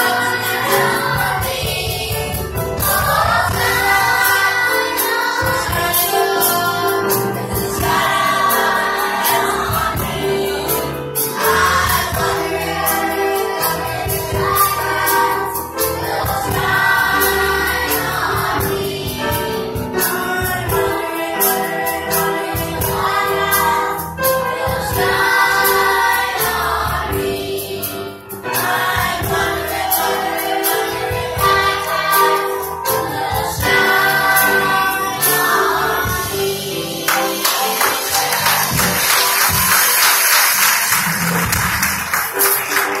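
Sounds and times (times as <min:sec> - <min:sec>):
children's choir singing gospel: 0:00.0 - 0:43.0
applause: 0:37.1 - 0:43.0.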